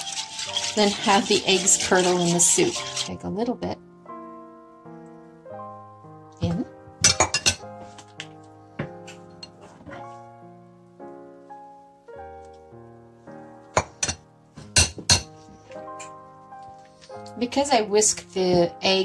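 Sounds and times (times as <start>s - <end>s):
background piano music: 0.0s - 19.0s.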